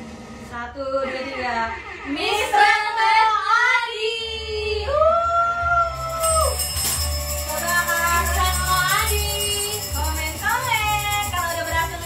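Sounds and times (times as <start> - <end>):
background music with low beat: 5.4 - 12.0.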